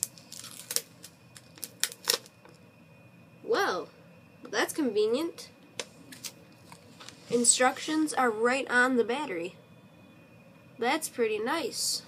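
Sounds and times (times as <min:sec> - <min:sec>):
paper label crackling: 0:00.0 - 0:02.3.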